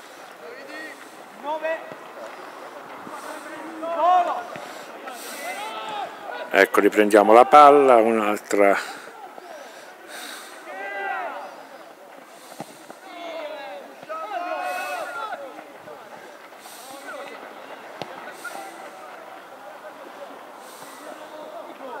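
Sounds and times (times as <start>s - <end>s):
distant players shouting: 0.1s - 22.0s.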